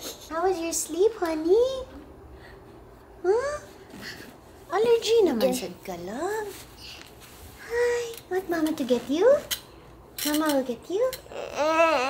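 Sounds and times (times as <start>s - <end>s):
toddler babbling: 11.2s - 12.0s.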